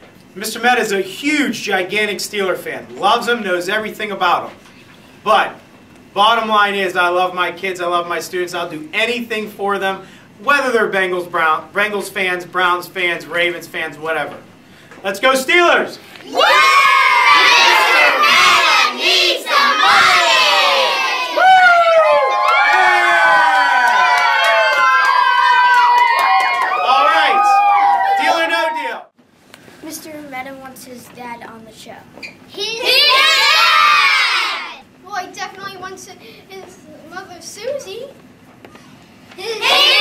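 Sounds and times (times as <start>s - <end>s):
children shouting and cheering: 16.3s - 29.0s, 32.6s - 34.8s, 39.4s - 40.0s.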